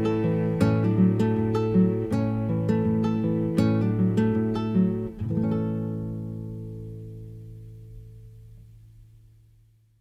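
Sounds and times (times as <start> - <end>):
acoustic guitar chord ringing: 0.0 - 9.8.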